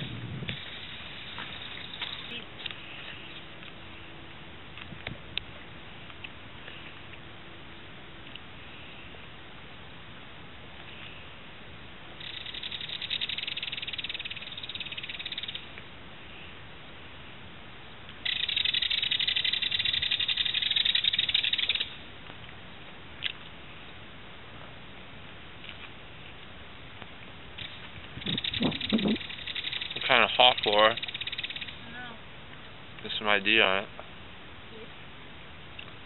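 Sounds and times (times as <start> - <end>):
kingfisher rattling call: 0.6 - 2.4, 12.2 - 15.7, 18.2 - 22.0, 27.6 - 31.9.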